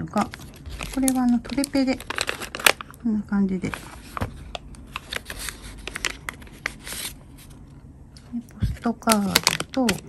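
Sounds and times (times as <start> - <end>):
paper and card rustling: 0.1 - 2.9, 3.6 - 7.6.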